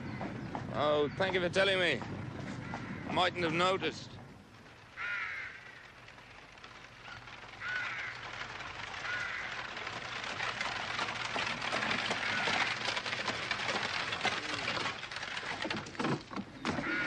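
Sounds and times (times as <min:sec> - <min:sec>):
crows cawing: 0:02.5 - 0:03.3, 0:04.9 - 0:05.9, 0:07.1 - 0:09.8, 0:12.0 - 0:13.0, 0:16.7 - 0:17.0.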